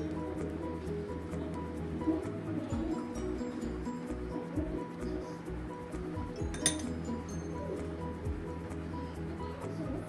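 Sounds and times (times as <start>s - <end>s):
background music: 0.0s - 10.0s
ceramic plate clink: 6.4s - 7.0s.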